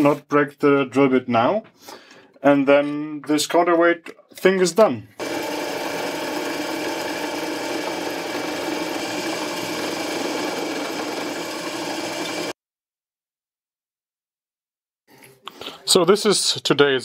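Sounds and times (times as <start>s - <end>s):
drill press drilling steel: 5.2s - 12.6s.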